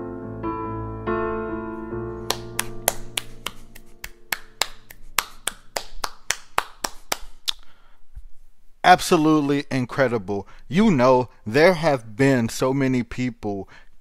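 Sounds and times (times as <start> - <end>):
piano chord ringing: 0.0 - 4.6
person clapping: 2.2 - 7.6.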